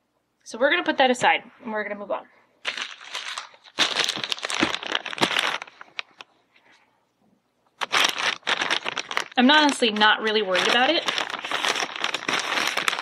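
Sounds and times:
plastic mailer crinkling: 2.6 - 6.3, 7.8 - 13.0.

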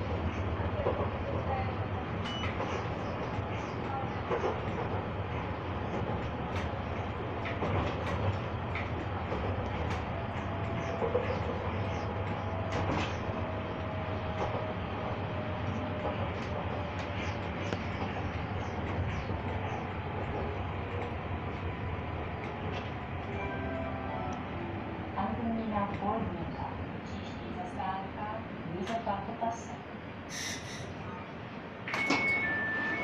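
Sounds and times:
tram rolling and rumbling: 0.0 - 33.0.

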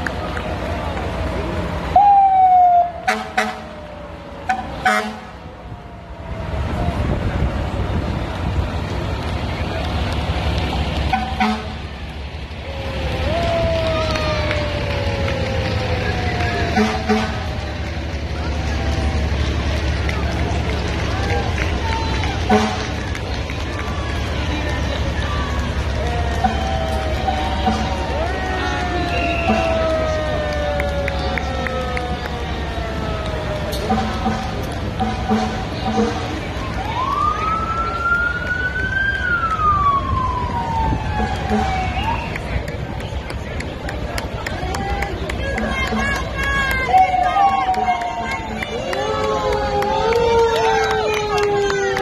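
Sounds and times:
crowd voices: 0.0 - 52.0
truck engine rumble: 0.0 - 52.0
horn blast: 3.0 - 3.8, 4.5 - 5.4, 11.1 - 11.9, 16.6 - 17.6, 22.4 - 23.1, 33.7 - 36.5.

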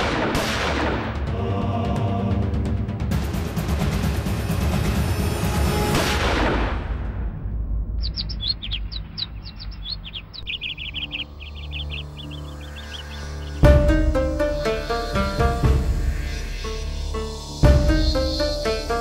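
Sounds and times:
dramatic background music: 0.0 - 19.0
small birds chirping: 8.0 - 19.0.

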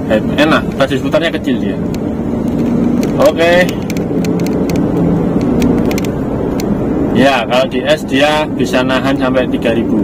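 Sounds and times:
car engine drone: 0.0 - 10.0
road and tyre noise: 0.0 - 10.0.

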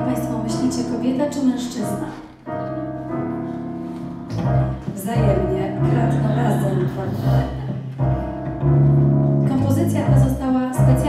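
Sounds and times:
double bass notes: 0.0 - 11.0
jazz band sustained chords: 2.4 - 11.0.

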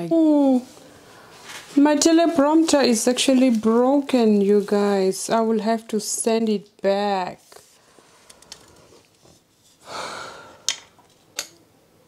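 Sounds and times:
person sighing: 9.8 - 10.7.

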